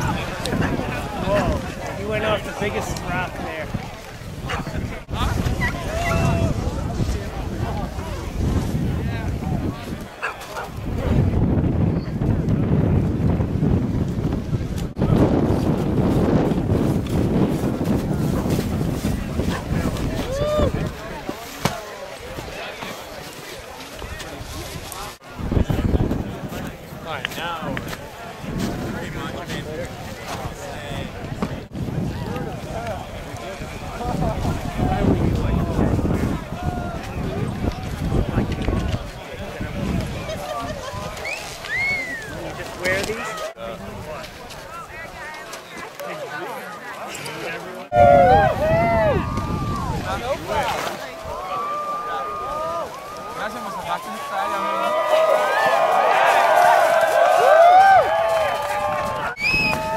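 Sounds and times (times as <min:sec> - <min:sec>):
wind buffeting microphone: 0:00.0 - 0:21.4, 0:24.0 - 0:45.2, 0:47.9 - 0:51.6
onlookers talking: 0:00.0 - 0:59.9
person whooping: 0:20.2 - 0:20.8, 0:47.9 - 0:49.9, 0:57.4 - 0:58.2
people calling out: 0:47.9 - 0:50.0.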